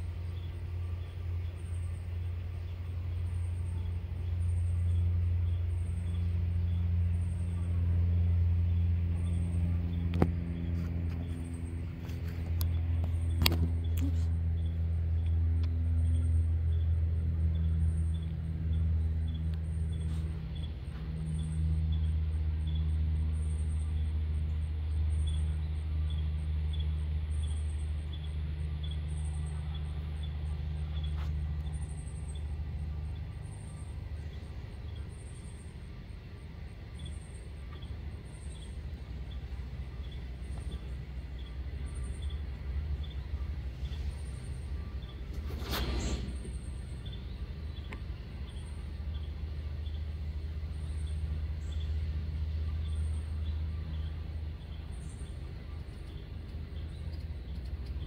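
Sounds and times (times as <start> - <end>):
low motor hum: 0.0 - 58.0.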